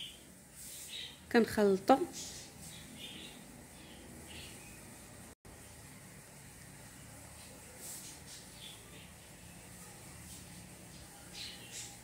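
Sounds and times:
room tone hiss: 0.0s - 1.4s, 2.0s - 12.0s.

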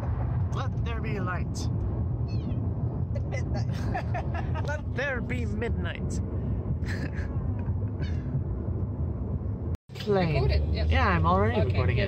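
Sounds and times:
road noise rumble: 0.0s - 12.0s
cat meowing: 2.3s - 2.6s.

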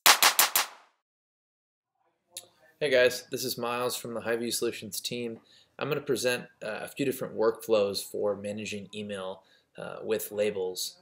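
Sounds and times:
rapid sharp percussive hits: 0.0s - 1.0s.

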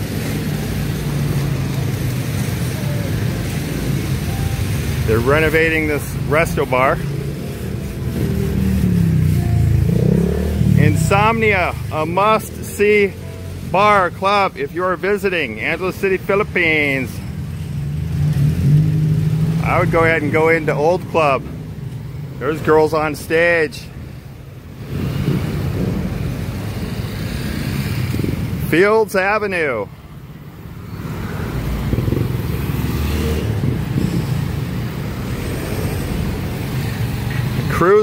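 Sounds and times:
cars passing: 0.0s - 38.0s
vehicle engine humming: 0.0s - 38.0s.

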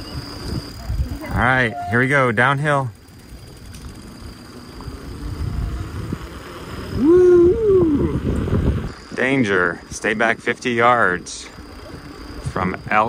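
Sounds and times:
wind buffeting microphone: 0.0s - 2.0s, 3.0s - 9.1s
bicycle tyres rolling on asphalt: 0.0s - 13.0s
person's high call: 1.2s - 2.2s.

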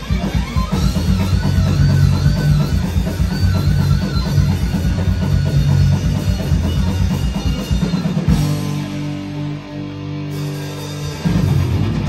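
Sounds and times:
lead guitar phrase: 0.0s - 12.0s
metal band playing loudly: 0.0s - 12.0s.

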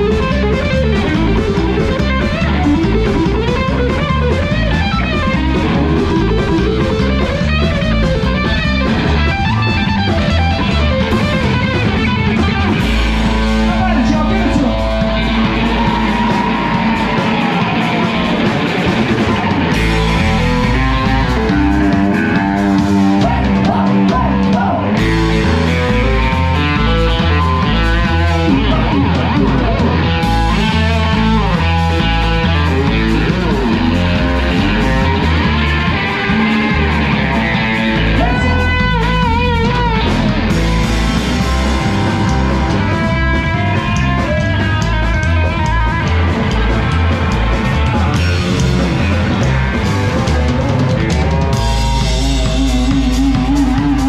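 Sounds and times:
drums: 0.0s - 54.0s
electric guitar lead with bends: 0.0s - 54.0s
upright bass line: 0.0s - 54.0s.

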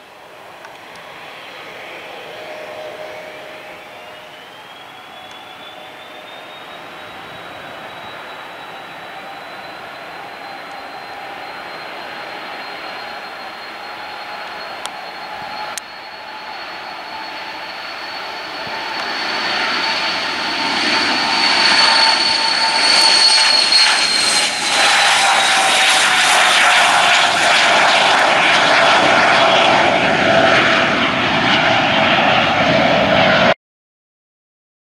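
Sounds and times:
jet engine whine and roar: 0.0s - 33.6s.

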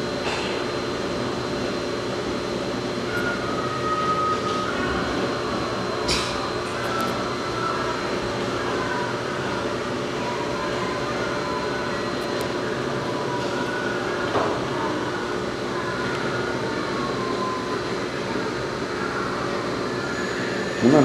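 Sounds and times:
machinery droning with whining tones: 0.0s - 21.0s.

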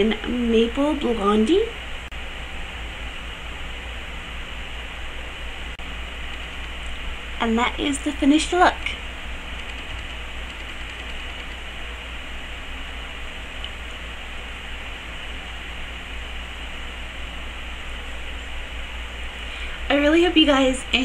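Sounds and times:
low hum: 0.0s - 21.0s.

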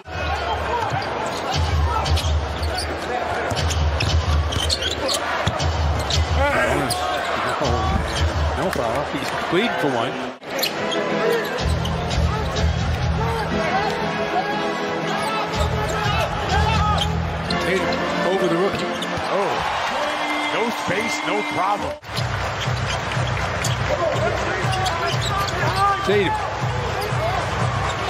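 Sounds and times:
arena music: 9.2s - 28.0s.

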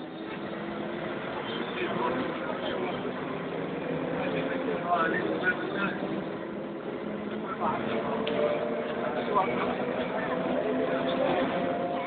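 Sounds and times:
bus diesel engine humming: 0.0s - 12.0s.

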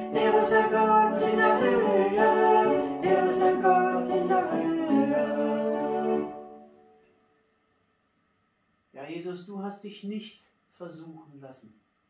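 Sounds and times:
voices singing unaccompanied: 0.0s - 6.7s.

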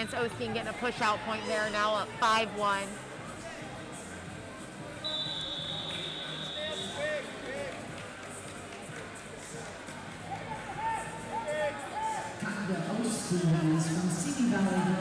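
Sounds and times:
murmur of voices in a hall: 0.0s - 15.0s
referee's whistle: 5.0s - 7.1s.

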